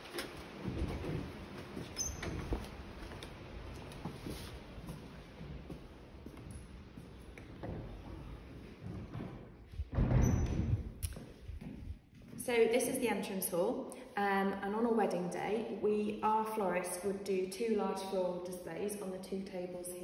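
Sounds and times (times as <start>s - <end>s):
heavy wooden door opening: 7.5s - 11.0s
door clicks and knocks: 9.9s - 11.0s.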